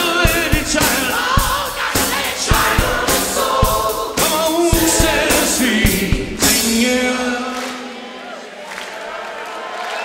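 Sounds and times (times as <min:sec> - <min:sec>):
live rock band playing: 0:00.0 - 0:07.0
drum hits: 0:00.0 - 0:07.1
people singing: 0:00.0 - 0:09.3.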